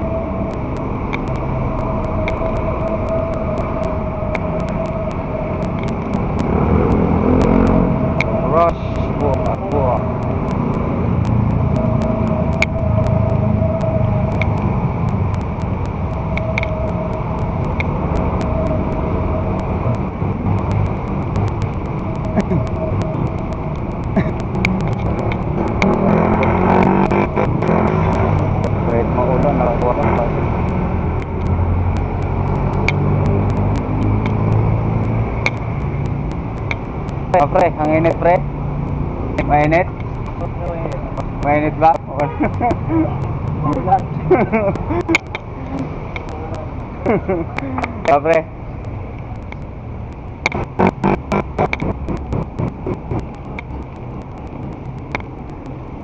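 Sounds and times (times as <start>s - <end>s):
steady low rumble: 0.0s - 56.0s
street traffic: 0.0s - 56.0s.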